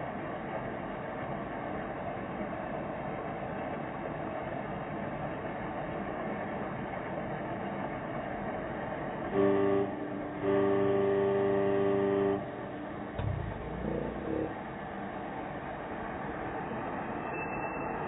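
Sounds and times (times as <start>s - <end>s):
car horn honking: 9.3s - 12.9s
traffic hum: 12.4s - 17.0s.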